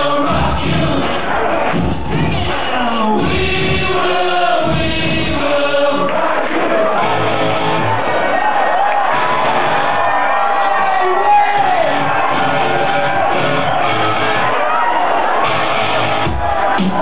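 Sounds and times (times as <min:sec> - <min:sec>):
crowd shouting and whooping: 0:00.0 - 0:04.7, 0:05.3 - 0:17.0
loud dance music: 0:00.0 - 0:17.0.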